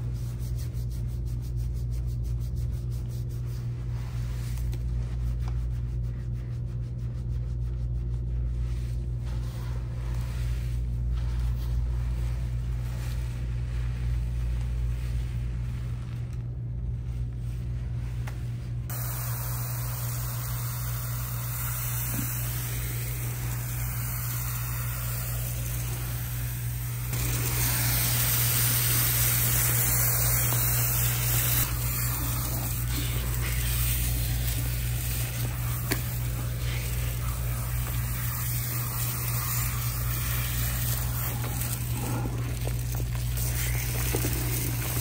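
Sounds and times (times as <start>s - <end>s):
steady low hum: 0.0s - 45.0s
water spraying onto hair: 18.9s - 45.0s.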